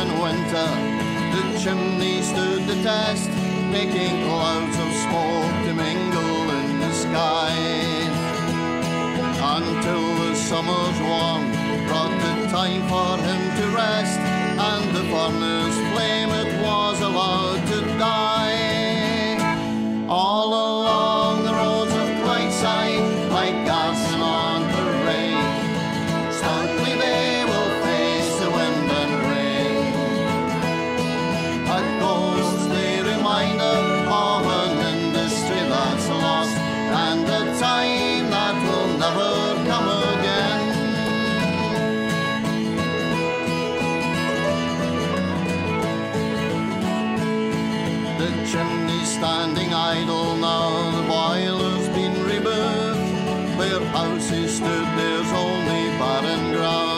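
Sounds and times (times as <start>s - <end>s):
folk band instrumental: 0.0s - 56.9s.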